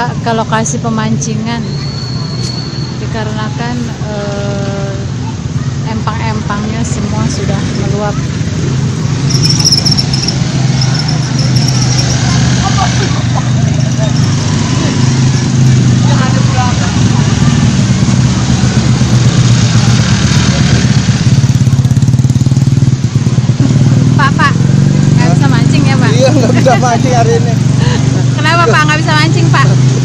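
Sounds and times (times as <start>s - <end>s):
small motorcycle engines running: 5.0s - 30.0s.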